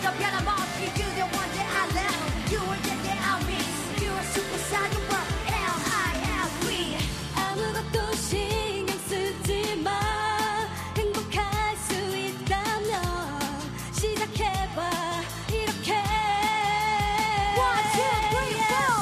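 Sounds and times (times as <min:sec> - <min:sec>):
dance-pop backing track: 0:00.0 - 0:19.0
women singing into microphones: 0:00.0 - 0:19.0.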